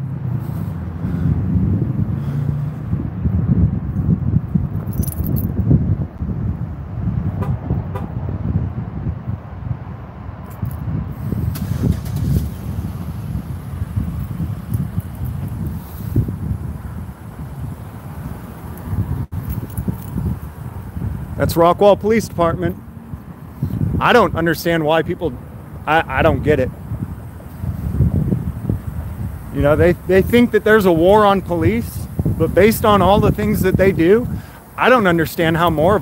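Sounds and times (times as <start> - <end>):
distant road traffic: 0.0 - 36.0
wind on microphone: 0.0 - 36.0
faint light clinks: 4.9 - 5.5
microphone handling noise: 13.3 - 17.6, 18.6 - 21.3.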